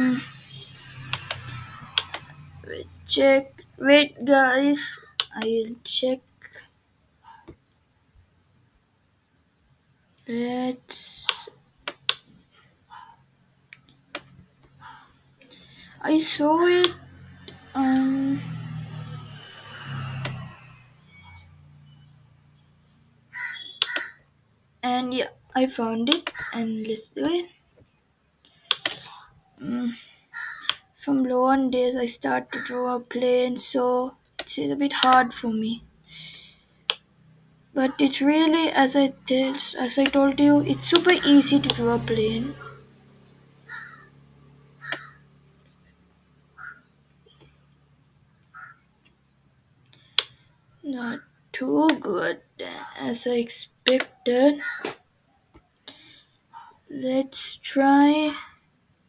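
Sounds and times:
sharp clicks: 0:01.1 - 0:02.3, 0:05.1 - 0:05.5, 0:23.8 - 0:24.1, 0:28.4 - 0:29.1, 0:49.8 - 0:50.4.

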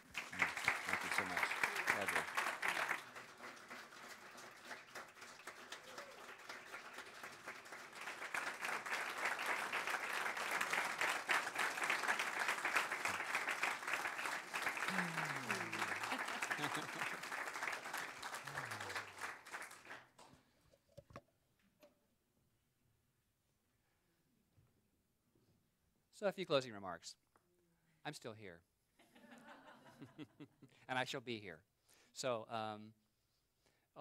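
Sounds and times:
congregation applauding: 0:00.0 - 0:20.3.

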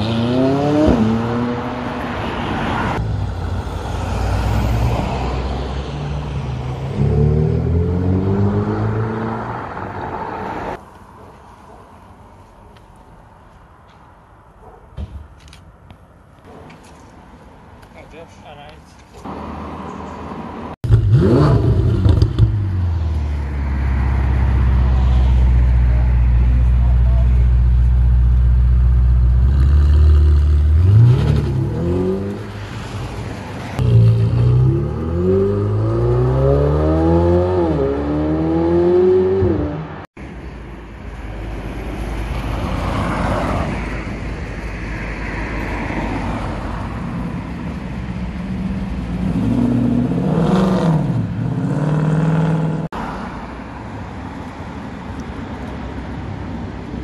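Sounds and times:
road noise: 0:00.0 - 0:57.0
sports car engine idling and revving: 0:20.8 - 0:32.4.

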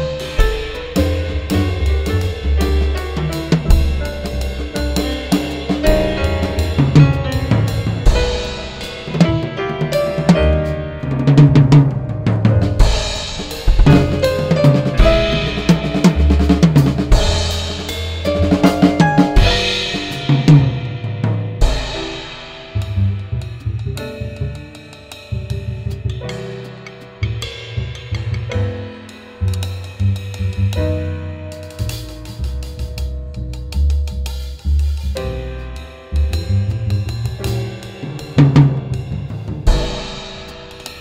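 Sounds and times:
double bass notes: 0:00.0 - 0:40.4
drum kit playing: 0:00.0 - 0:41.0.

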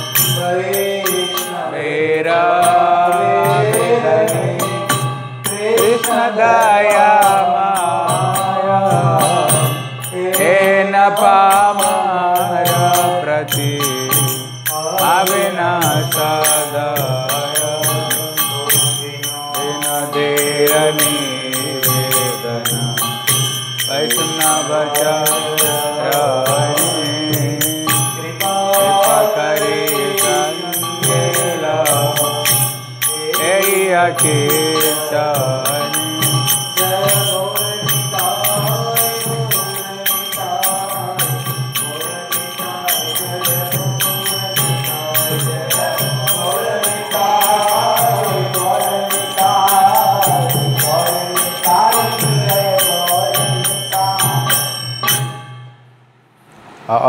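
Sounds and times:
devotional chanting: 0:00.0 - 0:55.7
fast metallic percussion: 0:00.0 - 0:55.8.

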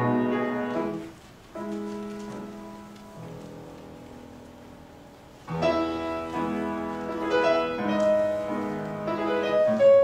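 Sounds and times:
slow piano chords: 0:00.0 - 0:10.0.

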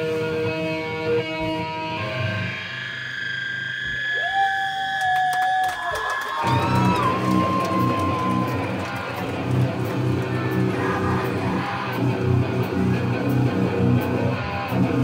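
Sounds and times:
electric guitar bending notes: 0:00.0 - 0:04.0, 0:06.4 - 0:15.0.

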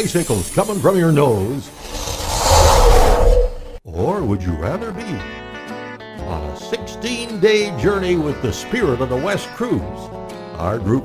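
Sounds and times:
gusting wind whistling: 0:01.8 - 0:03.8.

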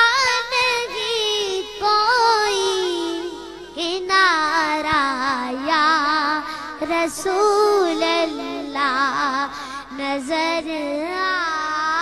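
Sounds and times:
boy singing unaccompanied: 0:00.0 - 0:12.0.

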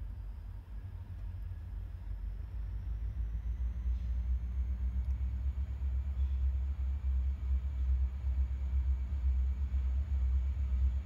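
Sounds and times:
diesel freight train rumble: 0:00.0 - 0:11.0.

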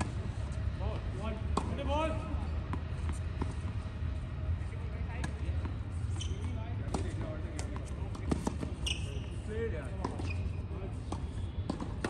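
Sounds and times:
tennis ball bouncing on hard court: 0:01.5 - 0:01.9, 0:02.6 - 0:03.9, 0:05.1 - 0:12.0.

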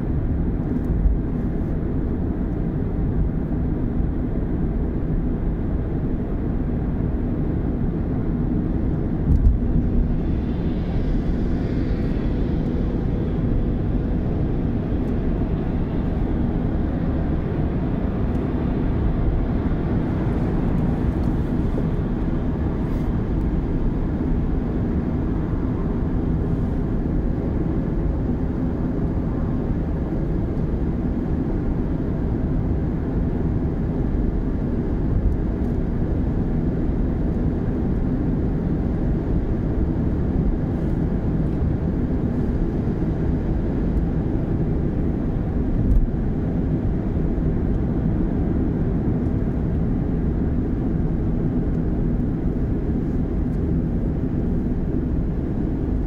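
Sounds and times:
car engine hum: 0:00.0 - 0:56.0
road and tyre noise: 0:00.0 - 0:56.0.

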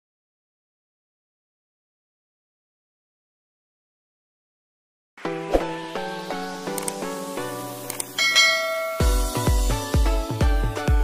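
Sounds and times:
electronic dance music: 0:06.0 - 0:11.0
bright bell chime: 0:08.2 - 0:09.6.

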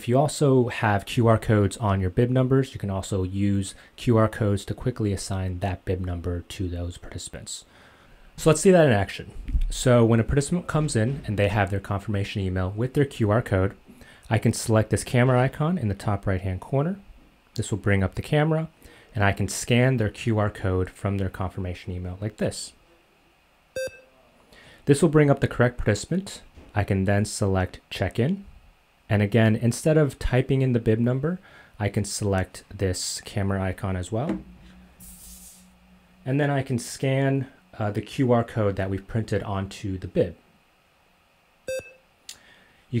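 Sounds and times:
smartphone short beep: 0:23.8 - 0:24.1, 0:41.7 - 0:42.0.

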